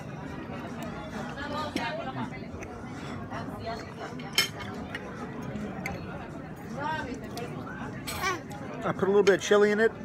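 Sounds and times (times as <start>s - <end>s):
background chatter: 0.0s - 10.0s.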